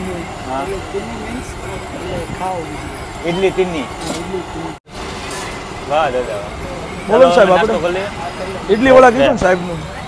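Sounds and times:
faint voices: 0.0s - 10.0s
traffic hum: 0.0s - 10.0s.

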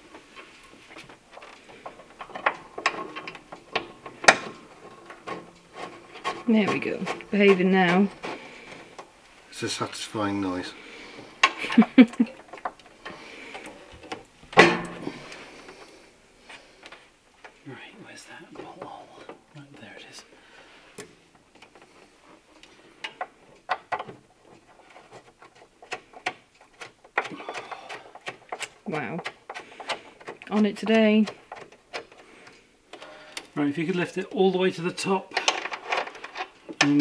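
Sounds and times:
person laughing: 11.5s - 12.4s.

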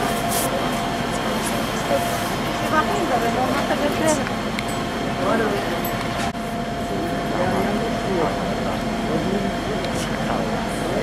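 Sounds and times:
machine drone with whine: 0.0s - 11.0s.

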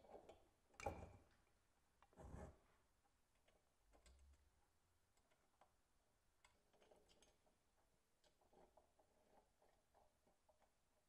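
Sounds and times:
faint metal clicks and taps: 6.4s - 7.6s.

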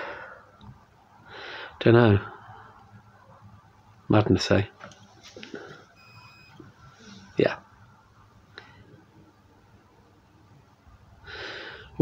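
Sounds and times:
fabric rustling: 4.8s - 5.9s.

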